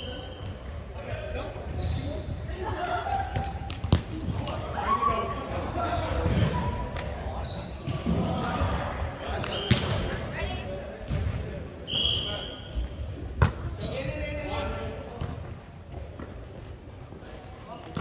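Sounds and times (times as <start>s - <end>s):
echoing players' chatter: 0.0s - 18.0s
ball striking court: 3.4s - 4.6s, 13.4s - 13.7s.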